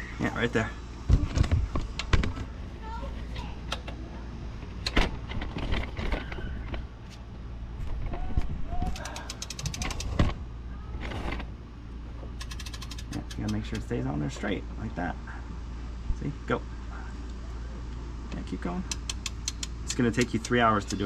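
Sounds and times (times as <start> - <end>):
hand ratchet clicking: 8.9 - 10.2, 12.4 - 13.9, 18.9 - 21.0.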